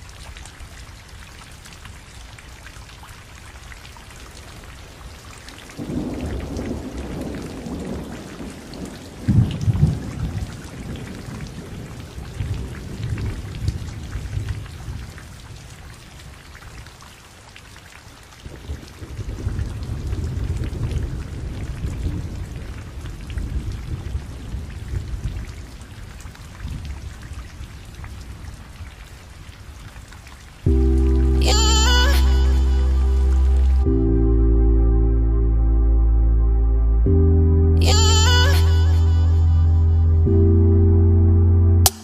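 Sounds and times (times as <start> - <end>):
water patter with low rumbling: 0.0 - 40.7
loud music: 30.7 - 42.0.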